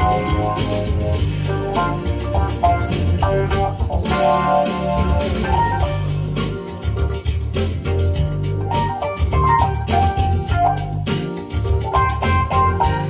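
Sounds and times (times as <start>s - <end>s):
backing track with bass and drums: 0.0s - 13.0s
keyboard playing: 0.0s - 13.0s.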